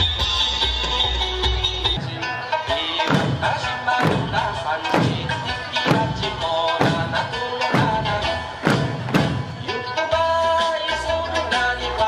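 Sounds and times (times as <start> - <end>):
folk music melody: 0.8 - 12.0
hand drum thumps: 3.1 - 9.7.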